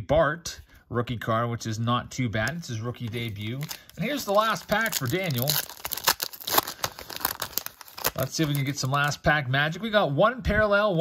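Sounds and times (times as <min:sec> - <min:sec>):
foil wrapper tearing and crinkling: 0:03.0 - 0:09.2.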